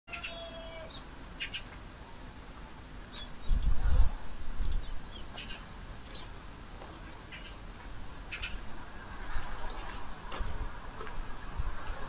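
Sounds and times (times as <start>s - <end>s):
small birds chirping: 0.1s - 1.9s, 2.6s - 10.7s
low rumble on microphone: 3.4s - 5.1s.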